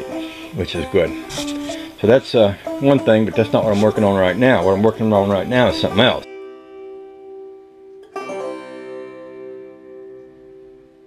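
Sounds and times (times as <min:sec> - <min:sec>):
plucked string chord ringing: 0:00.0 - 0:11.0.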